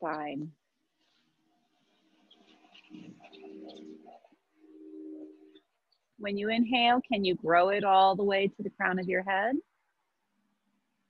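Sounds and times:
dove cooing: 0:02.7 - 0:05.6.

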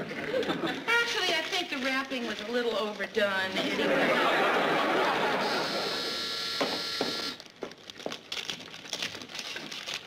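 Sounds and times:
wrapping paper crinkling: 0:00.9 - 0:03.6, 0:07.4 - 0:10.0
studio audience laughter: 0:03.6 - 0:06.0.

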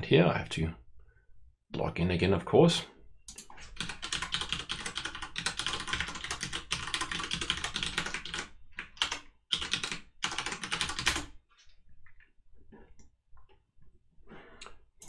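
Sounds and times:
typing on computer keyboard: 0:03.3 - 0:11.4.

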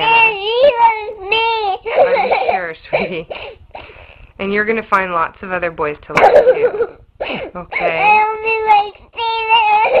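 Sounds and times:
girl crying: 0:00.0 - 0:03.6, 0:06.4 - 0:10.0.

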